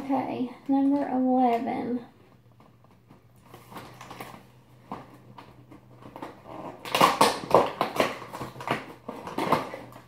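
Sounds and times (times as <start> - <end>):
packaging being torn open: 3.5 - 4.5, 5.9 - 10.0.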